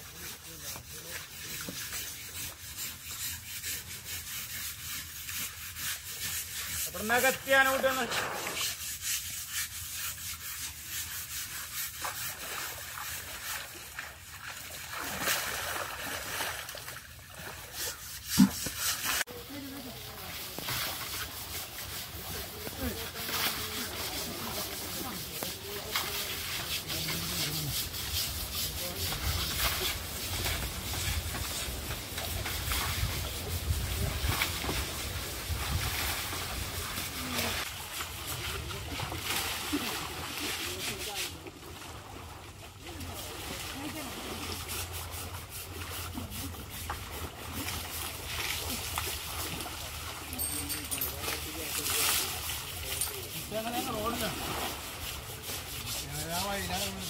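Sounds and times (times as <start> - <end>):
scrubbers rubbing elephant hide: 0.0 - 16.0, 16.8 - 41.7, 42.8 - 57.0
water splashing: 0.2 - 57.0
water poured from a bucket: 10.1 - 55.7.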